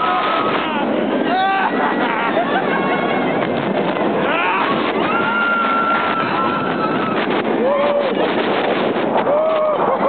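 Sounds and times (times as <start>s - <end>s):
lower yell: 0.0s - 2.0s, 4.2s - 8.2s
roller coaster track noise: 0.0s - 10.0s
wind rush: 0.0s - 10.0s.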